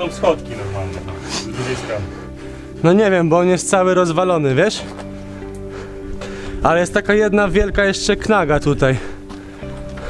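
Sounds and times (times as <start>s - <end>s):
man speaking: 0.0s - 2.2s
background music with held tones: 0.0s - 10.0s.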